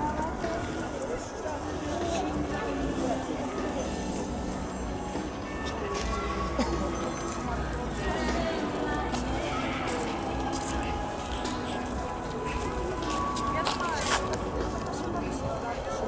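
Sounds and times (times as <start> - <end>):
people talking: 0.0 - 16.0.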